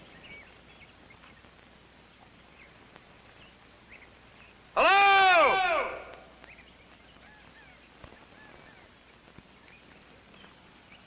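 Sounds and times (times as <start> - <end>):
horse whinnying: 4.8 - 6.2
faint bird chirps: 6.3 - 11.0.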